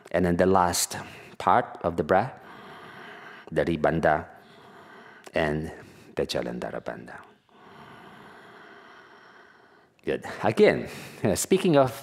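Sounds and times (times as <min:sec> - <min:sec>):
soft human breath: 0:02.4 - 0:03.5, 0:04.3 - 0:06.2, 0:07.2 - 0:10.0.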